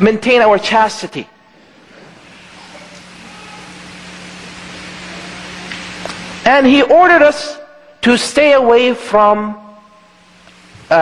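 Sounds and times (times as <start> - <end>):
low steady hum: 0.0 - 11.0
steady hissing noise: 0.0 - 11.0.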